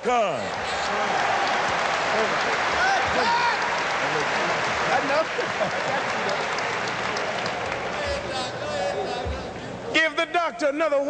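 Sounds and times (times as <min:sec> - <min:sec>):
crowd applauding: 0:00.4 - 0:09.9.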